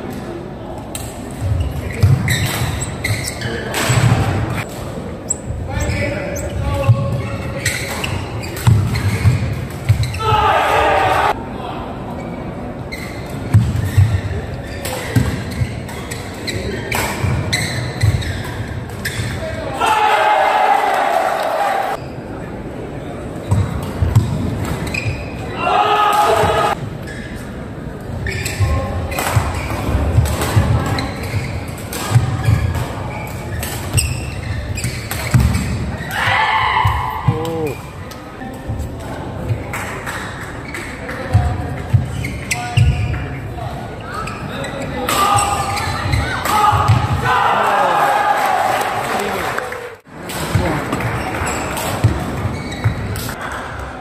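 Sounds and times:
shoes thudding and squeaking: 1.3s - 4.7s, 5.3s - 10.4s, 12.9s - 19.5s, 23.4s - 25.4s, 28.2s - 37.8s, 40.6s - 43.4s, 44.0s - 47.3s, 50.6s - 53.4s.

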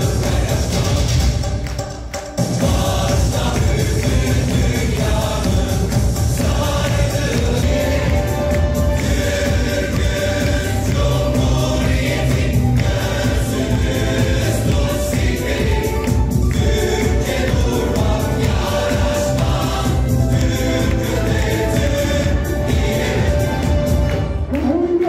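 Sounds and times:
choir singing: 0.0s - 1.7s, 2.4s - 24.7s
instrumental accompaniment: 0.0s - 25.0s.

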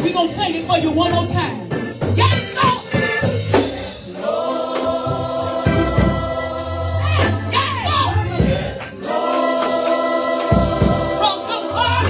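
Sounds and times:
gospel choir singing: 1.8s - 12.0s.

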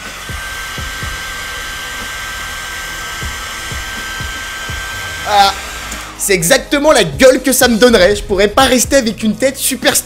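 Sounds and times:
hair dryer running: 0.0s - 6.9s.

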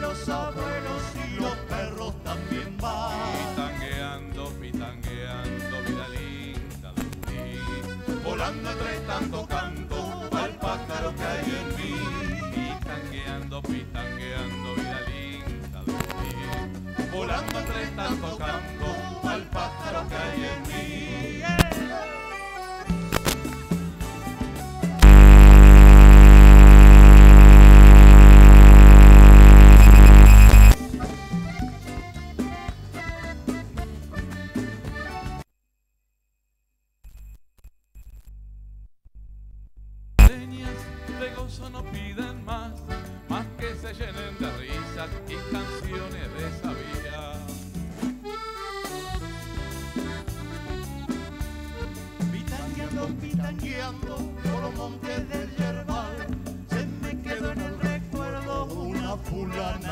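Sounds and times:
bass guitar: 0.0s - 21.9s, 22.9s - 35.4s, 40.2s - 59.9s
acoustic guitar: 0.0s - 22.1s, 40.2s - 59.9s
loud electrical buzz: 25.0s - 30.8s
conga drums: 41.9s - 59.9s.

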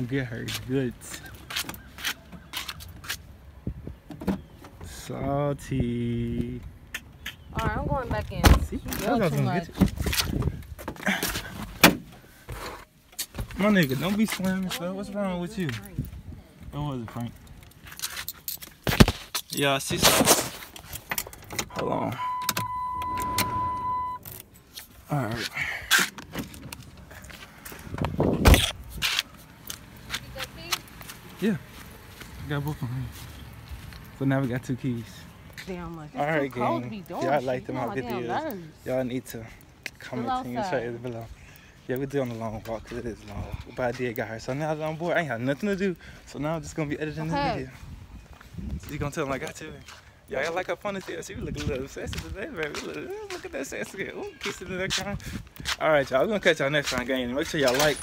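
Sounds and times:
car door shutting: 21.2s - 24.3s
footsteps on grass: 24.7s - 34.8s, 49.5s - 53.6s.

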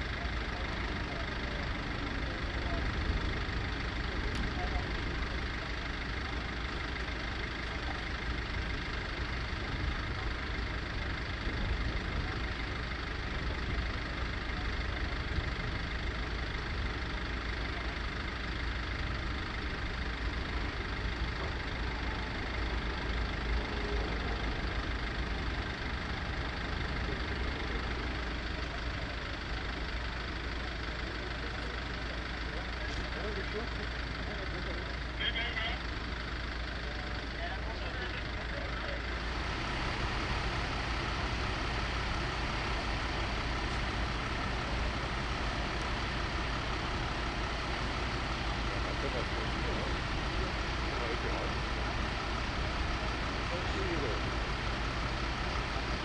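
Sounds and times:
heavy vehicle engines idling: 0.0s - 56.0s
indistinct voices: 37.1s - 56.0s.

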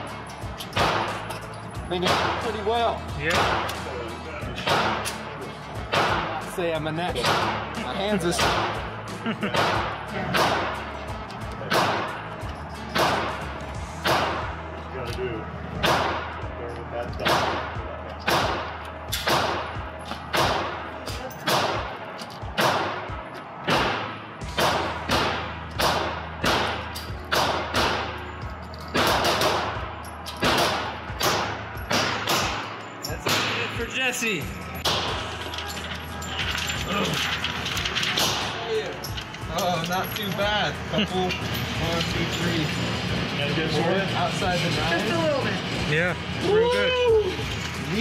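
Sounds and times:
pistol shots with echo: 0.7s - 1.2s, 2.0s - 2.5s, 3.3s - 3.8s, 4.6s - 5.3s, 5.9s - 6.3s, 7.2s - 7.7s, 9.5s - 10.8s, 11.7s - 12.2s, 13.0s - 13.4s, 14.0s - 14.6s, 15.8s - 16.4s, 17.2s - 28.2s, 29.0s - 33.8s.

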